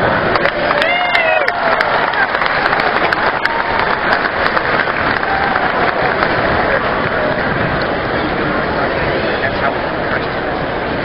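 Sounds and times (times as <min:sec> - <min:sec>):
crowd applauding: 0:00.0 - 0:10.2.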